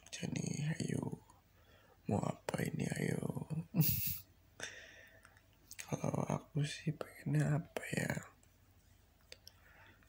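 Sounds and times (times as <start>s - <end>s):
person speaking: 0.0s - 1.3s, 2.1s - 4.2s, 5.7s - 8.4s
soft intake of breath: 4.6s - 5.2s.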